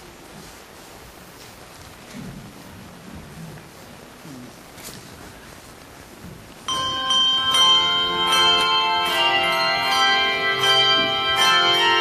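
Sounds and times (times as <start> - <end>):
handbell choir ringing chords: 6.7 - 12.0.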